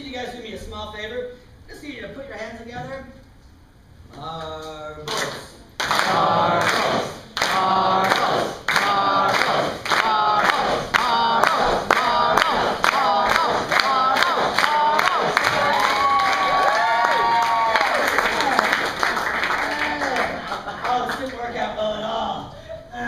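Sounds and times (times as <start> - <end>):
person making wordless vocal sounds: 5.9 - 15.8.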